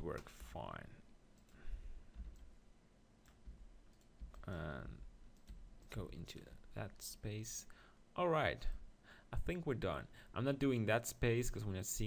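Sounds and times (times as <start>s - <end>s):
keyboard and mouse clicks: 5.3s - 6.0s.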